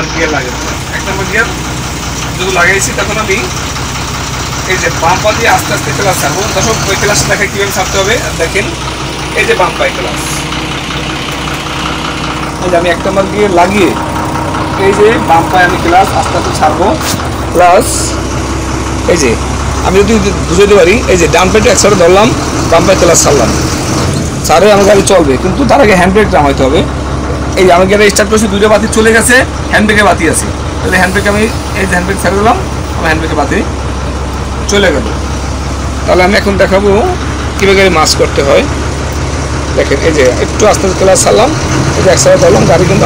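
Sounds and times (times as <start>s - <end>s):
man talking: 0.0s - 1.6s, 2.3s - 3.6s, 4.6s - 10.5s, 12.5s - 18.3s, 19.0s - 23.7s, 24.4s - 26.9s, 27.5s - 33.8s, 34.6s - 35.2s, 36.0s - 38.8s, 39.7s - 43.0s
bus diesel engine idling: 0.0s - 43.0s.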